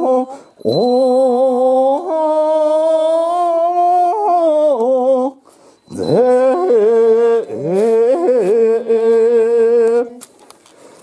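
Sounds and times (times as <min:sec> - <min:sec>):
person chanting a hymn: 0:00.0 - 0:10.2.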